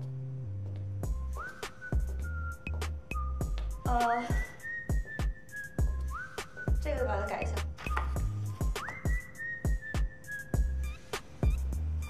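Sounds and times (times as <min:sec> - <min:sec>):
low bass notes: 0:00.0 - 0:01.4, 0:06.8 - 0:08.6, 0:10.6 - 0:12.0
light percussive beat: 0:01.0 - 0:11.9
whistled melody: 0:01.0 - 0:12.0.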